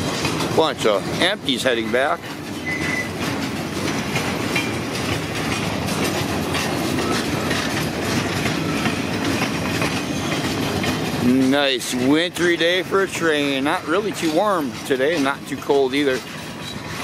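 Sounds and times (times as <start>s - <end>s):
steel train wheels rumbling: 0.0s - 17.0s
wheels clacking over rail joints: 0.0s - 17.0s
high squeal: 2.6s - 3.1s.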